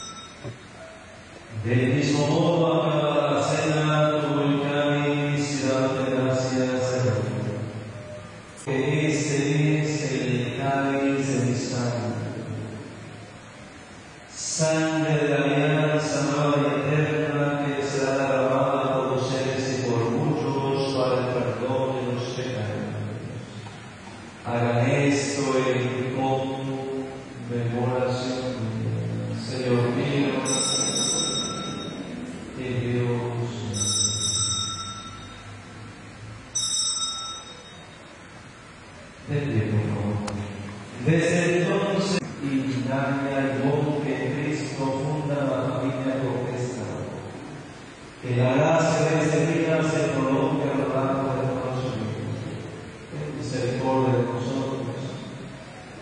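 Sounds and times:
small altar bells jingling: 0:00.0 - 0:00.7, 0:30.4 - 0:32.3, 0:33.7 - 0:35.6, 0:36.5 - 0:38.2.

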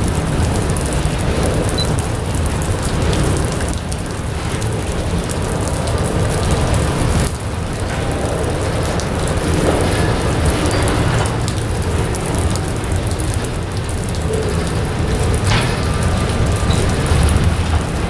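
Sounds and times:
train wheels rumbling on rail: 0:00.0 - 0:18.0.

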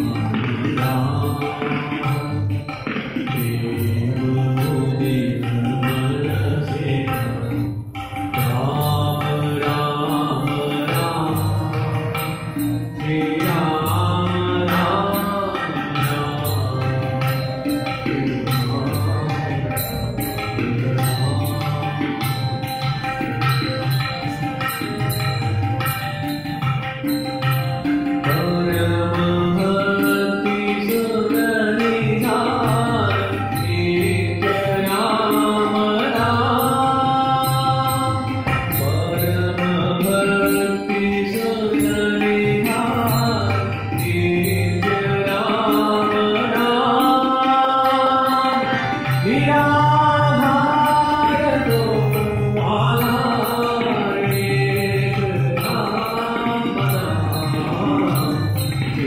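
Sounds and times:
harmonium: 0:00.0 - 0:59.0
man singing devotional song: 0:00.0 - 0:59.0
tabla beat: 0:00.0 - 0:59.0.

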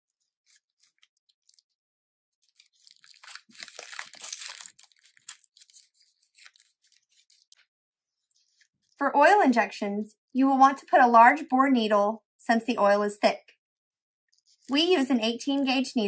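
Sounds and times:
packaging crinkling: 0:00.2 - 0:01.8, 0:02.4 - 0:07.6
packaging tearing open: 0:02.4 - 0:07.6.

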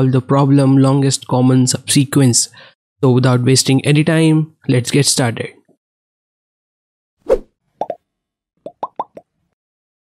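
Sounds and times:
rising bloop pops: 0:08.6 - 0:09.2.

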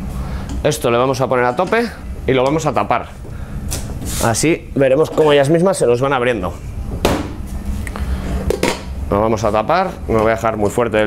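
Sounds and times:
gas range rumble: 0:00.0 - 0:11.0.

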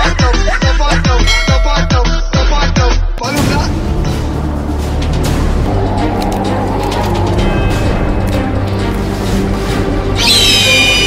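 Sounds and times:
background music with low drone: 0:03.2 - 0:11.0
shrill bird-like screech: 0:10.2 - 0:11.0.

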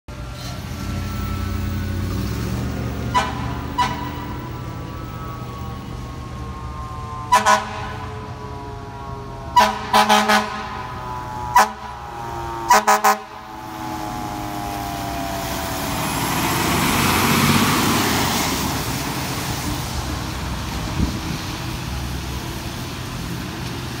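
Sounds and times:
truck engine passing: 0:00.1 - 0:24.0
tyres on wet road: 0:00.1 - 0:24.0
siren winding down: 0:02.8 - 0:20.5
fire truck air horn blasts: 0:03.0 - 0:04.5, 0:07.2 - 0:15.6.

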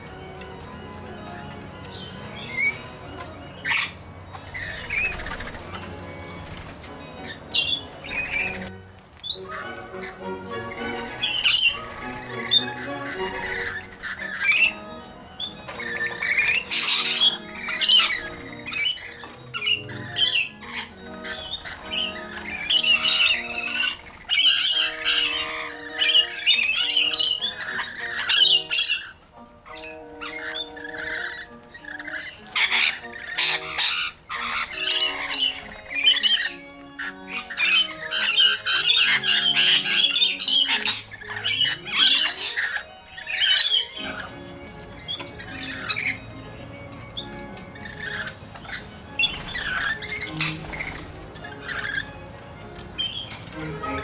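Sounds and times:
background music of held notes: 0:00.0 - 0:54.0
parrots screeching: 0:00.0 - 0:54.0.

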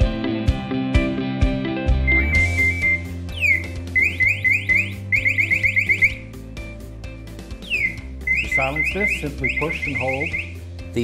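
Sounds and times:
background music: 0:00.0 - 0:11.0
rising electronic alarm chirps: 0:02.0 - 0:06.3, 0:07.6 - 0:10.6.

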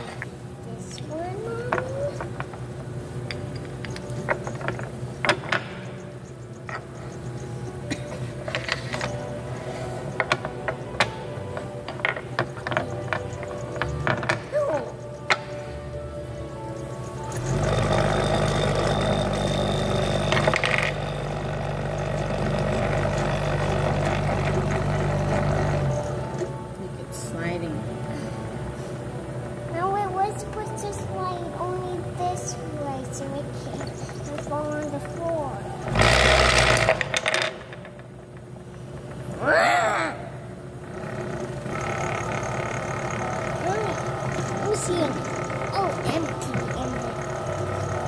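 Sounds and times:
mechanical hum with low drone: 0:00.0 - 0:48.0.

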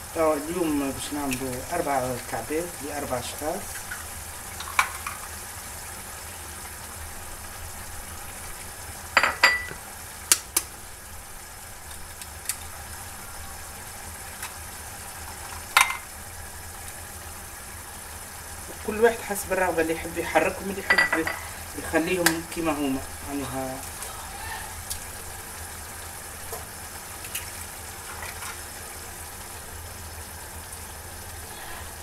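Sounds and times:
sauce sizzling in a frying pan: 0:00.0 - 0:32.0.

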